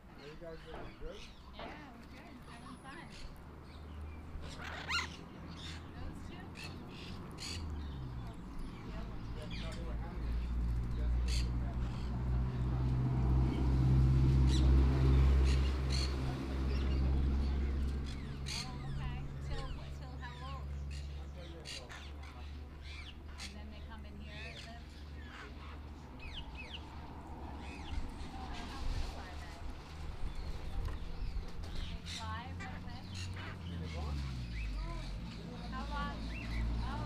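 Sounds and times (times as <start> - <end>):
parakeets squawking: 2.2 - 12.9, 14.4 - 29.6, 30.3 - 37.0.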